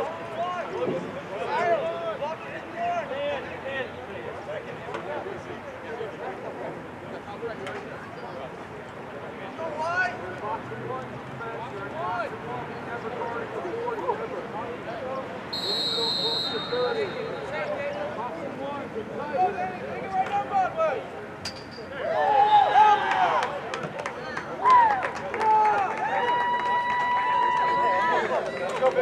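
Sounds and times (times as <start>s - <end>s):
referee whistle blast: 15.5s - 17.6s
people calling out: 15.6s - 17.8s.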